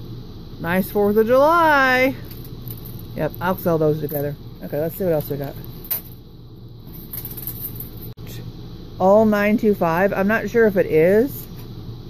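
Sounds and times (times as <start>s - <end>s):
low background hum: 0.0s - 12.0s
metal chains on metal tray: 2.2s - 3.2s, 5.0s - 6.2s, 6.9s - 8.1s
plastic bag handled: 2.2s - 4.3s.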